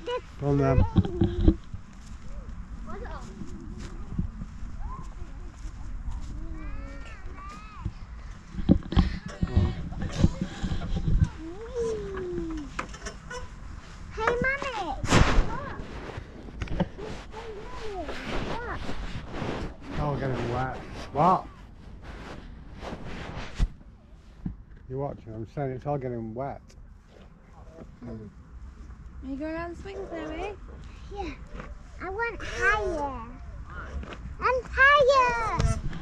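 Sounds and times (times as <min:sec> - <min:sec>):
steady low rumble: 0:00.0 - 0:36.0
children calling and squealing: 0:17.0 - 0:18.9.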